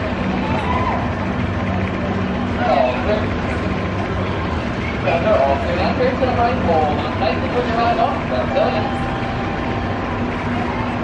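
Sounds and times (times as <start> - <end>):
people's voices: 0.0 - 11.0
roller coaster machinery humming: 0.0 - 11.0.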